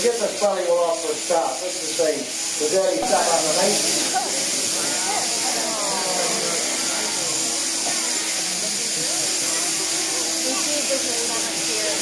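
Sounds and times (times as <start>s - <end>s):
shearing handpiece humming: 0.0s - 12.0s.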